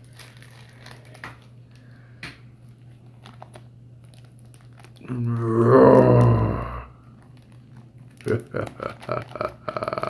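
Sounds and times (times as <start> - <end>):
plastic wrapping crinkling: 0.0 - 2.0, 2.6 - 10.0.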